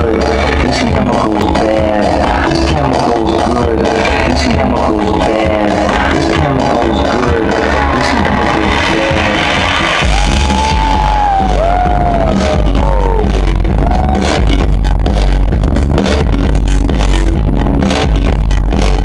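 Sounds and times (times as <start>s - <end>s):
electronic dance music: 0.0s - 19.0s
heavy bass: 0.0s - 19.0s.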